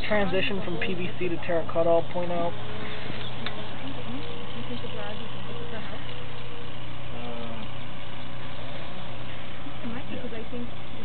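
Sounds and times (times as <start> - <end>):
faint voices talking: 0.0 - 11.0
low engine-like hum: 0.0 - 11.0.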